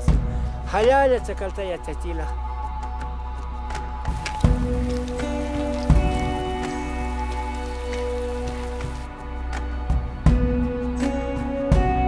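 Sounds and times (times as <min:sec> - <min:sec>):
icy snow pattering: 0:04.0 - 0:09.1
music drone: 0:04.1 - 0:09.1.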